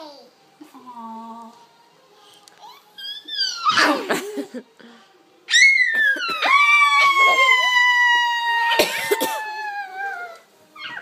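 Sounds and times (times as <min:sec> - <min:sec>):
child squealing: 0:05.5 - 0:10.0.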